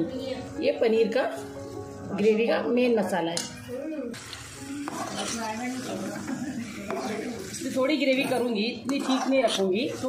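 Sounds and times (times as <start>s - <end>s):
metal spatula scraping pan: 4.8s - 10.0s.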